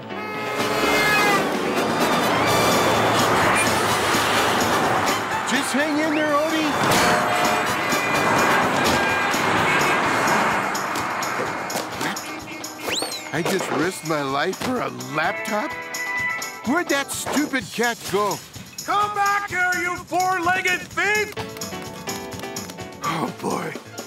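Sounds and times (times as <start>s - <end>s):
cartoon voice cry: 0.0s - 1.5s
traffic sound effects: 0.0s - 15.2s
busy cartoon music: 0.0s - 24.0s.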